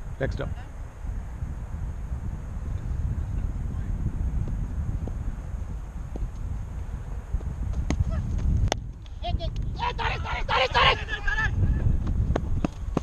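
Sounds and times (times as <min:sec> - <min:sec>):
wind on microphone: 0:00.0 - 0:13.0
people shouting: 0:09.3 - 0:11.9.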